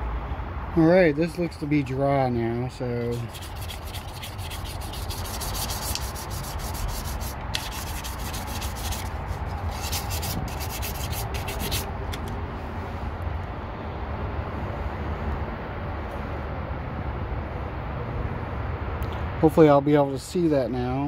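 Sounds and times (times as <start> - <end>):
sandpaper scraping metal: 3.0 - 11.9.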